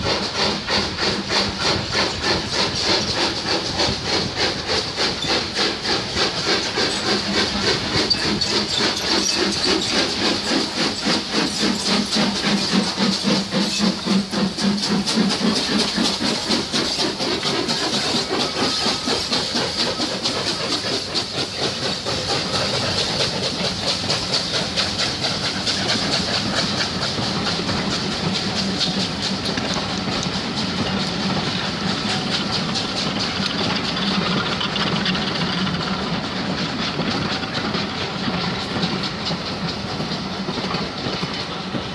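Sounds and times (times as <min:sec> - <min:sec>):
steam locomotive exhaust beats: 0:00.0 - 0:41.9
train wheels clicking over rail joints: 0:00.0 - 0:41.9.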